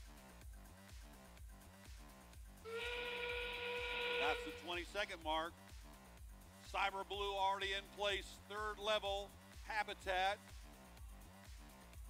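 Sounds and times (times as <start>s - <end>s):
background music with steady beat: 0.0s - 12.0s
buzzer tone: 2.7s - 4.7s.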